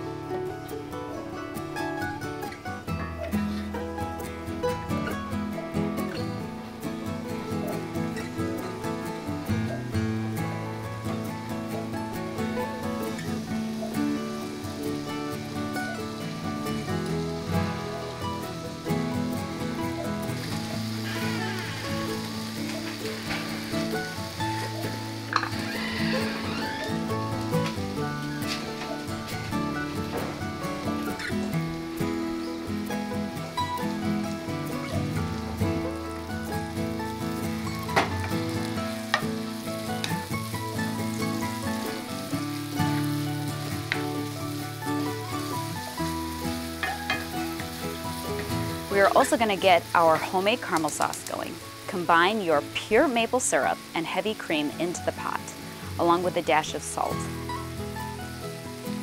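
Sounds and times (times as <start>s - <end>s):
soft background music: 0.0s - 59.0s
butter sizzling in a skillet: 5.9s - 59.0s.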